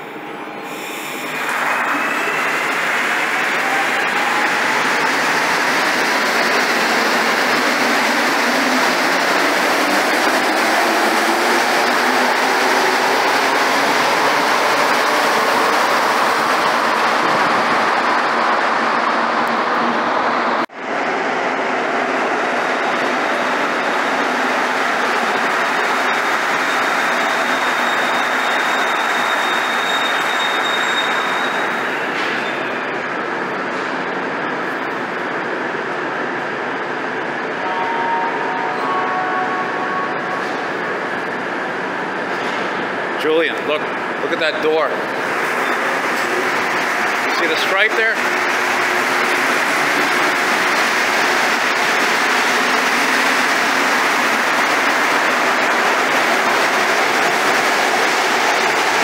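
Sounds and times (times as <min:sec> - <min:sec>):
metro train whine: 0:00.0 - 0:59.0
train running into station: 0:00.0 - 0:59.0
steady high tone: 0:37.4 - 0:41.8.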